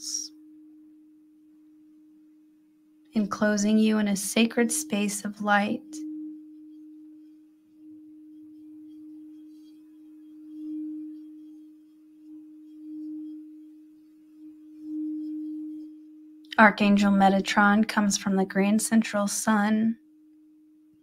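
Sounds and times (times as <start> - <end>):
crystal singing bowl ringing: 0.0 - 19.2, 19.9 - 21.0.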